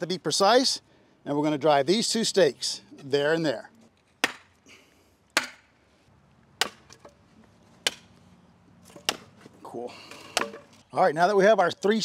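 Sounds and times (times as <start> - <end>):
sledgehammer blows on wooden stake: 4.2 - 4.5, 5.4 - 5.7, 6.6 - 7.2, 10.2 - 10.7.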